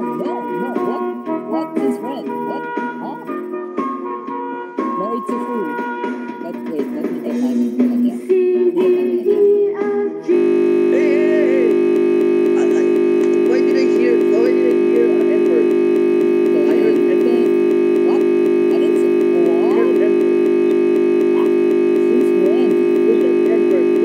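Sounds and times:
loud buzzing drone: 10.3 - 24.0.

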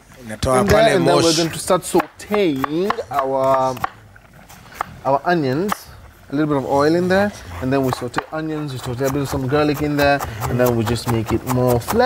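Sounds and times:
knife chopping on cutting board: 7.8 - 12.0.

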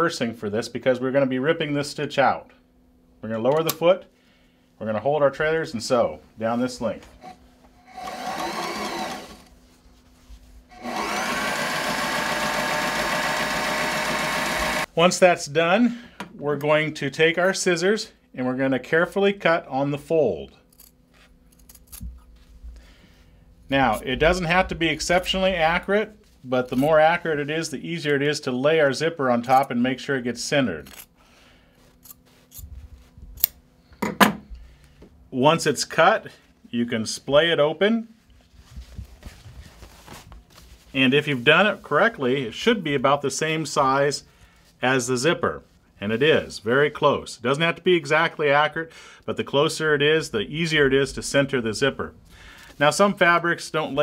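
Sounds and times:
electric sewing machine running: 7.2 - 9.5, 10.7 - 14.9.

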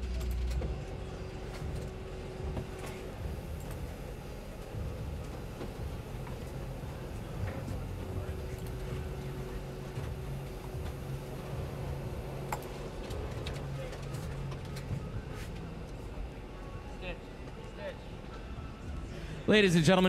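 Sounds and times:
faint indistinct voices: 0.0 - 19.6
low room hum: 0.0 - 20.0.

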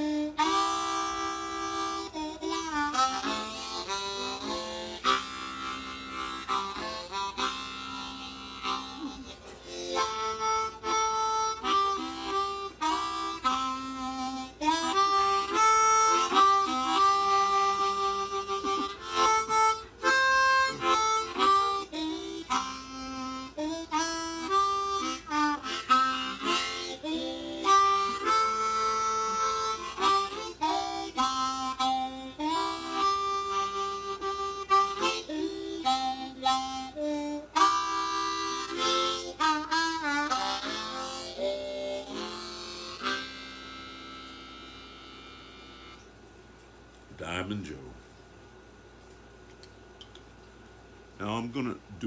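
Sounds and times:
blues harmonica: 0.0 - 46.2.

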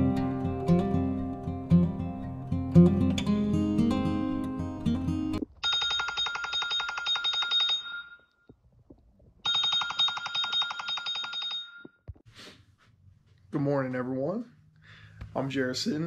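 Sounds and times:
acoustic guitar music: 0.0 - 5.5.

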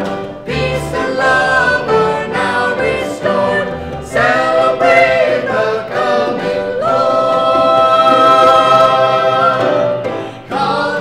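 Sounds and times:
vocal group singing in harmony: 0.0 - 11.0.

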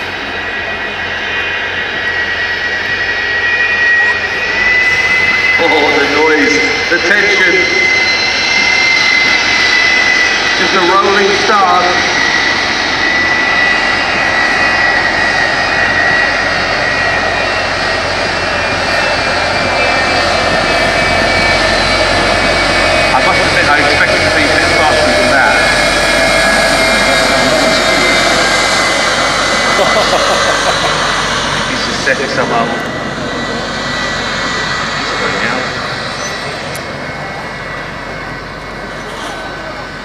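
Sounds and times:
high engine whine: 0.0 - 40.0
jet engine roaring: 0.0 - 40.0.

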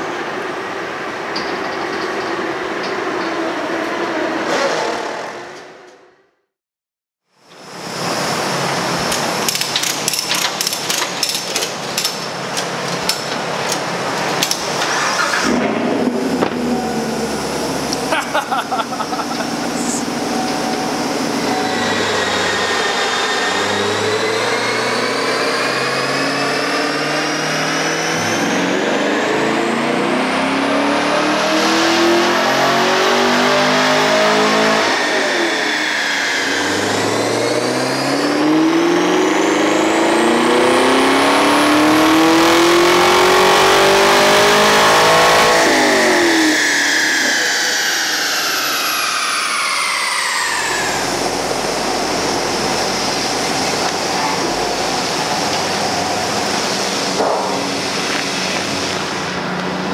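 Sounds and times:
car engine accelerating hard: 13.9 - 59.9.

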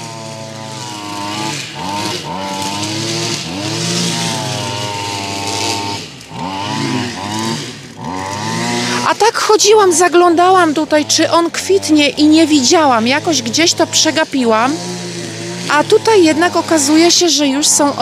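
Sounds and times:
motor engine revving: 0.0 - 18.0.

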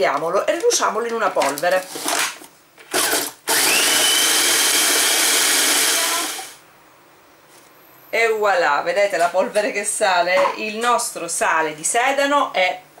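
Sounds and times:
food processor motor whine: 3.0 - 6.6.

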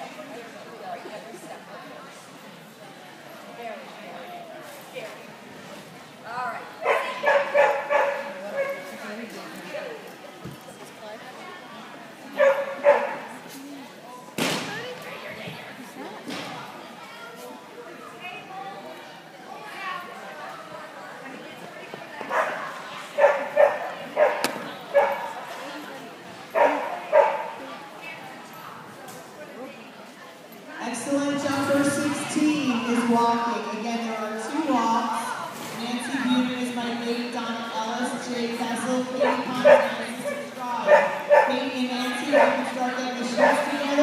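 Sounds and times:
dog barking: 6.8 - 8.8, 12.4 - 13.2, 22.3 - 22.6, 23.2 - 25.3, 26.6 - 27.6, 39.2 - 41.6.

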